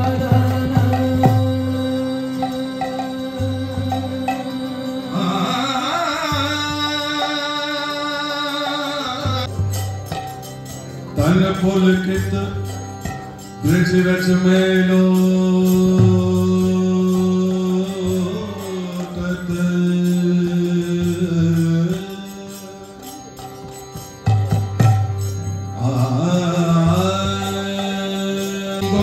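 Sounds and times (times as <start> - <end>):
mantra chanting with held notes: 25.8 - 29.0.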